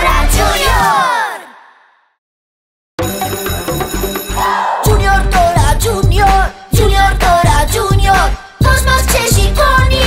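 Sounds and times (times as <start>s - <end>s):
cartoon electric school bell ringing: 3.0s - 4.8s
bright music track with beat: 3.0s - 10.0s.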